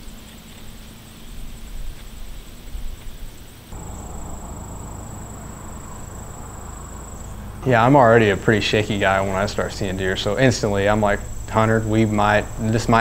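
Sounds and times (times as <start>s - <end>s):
insects chirring: 0.0s - 13.0s
low rumble: 3.8s - 10.3s.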